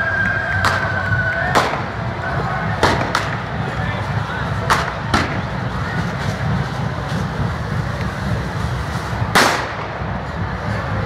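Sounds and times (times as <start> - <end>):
firecracker bangs: 0.6 - 2.1, 2.8 - 3.5, 4.6 - 5.5, 9.3 - 10.1.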